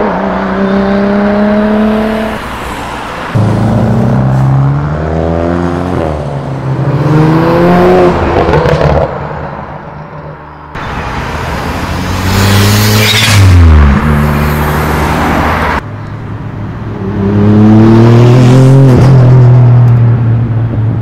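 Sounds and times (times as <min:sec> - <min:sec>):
car engines accelerating: 0:00.0 - 0:09.8, 0:10.8 - 0:15.8, 0:16.4 - 0:21.0.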